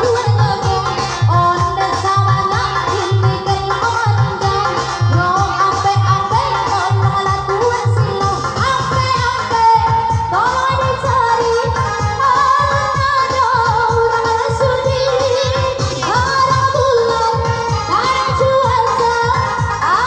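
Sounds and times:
amplified backing music: 0:00.0 - 0:20.0
person singing through microphone: 0:00.0 - 0:20.0.

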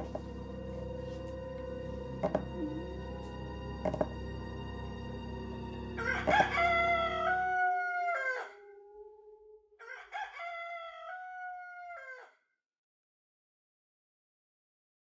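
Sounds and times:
low music drone: 0:00.0 - 0:08.7
rooster crowing: 0:06.0 - 0:09.2, 0:09.8 - 0:12.4.

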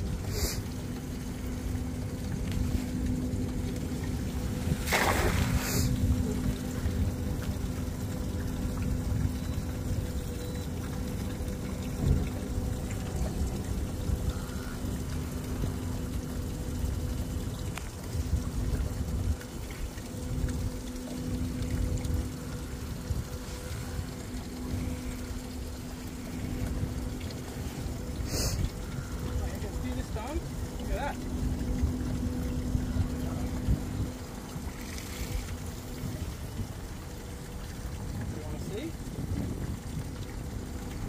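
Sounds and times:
steady low hum: 0:00.0 - 0:41.0
water lapping against boat hull: 0:00.0 - 0:41.0
wind on microphone: 0:39.0 - 0:40.3.

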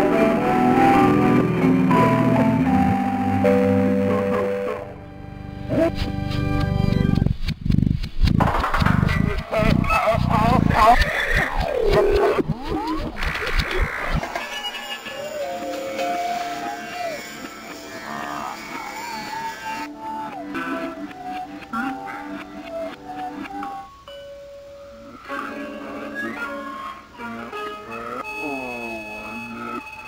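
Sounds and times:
deep thumps: 0:07.1 - 0:14.2
warbling sliding tones: 0:08.0 - 0:16.3.

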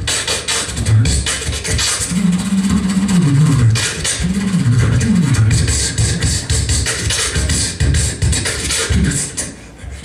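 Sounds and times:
beatboxing clicks: 0:00.0 - 0:10.0.

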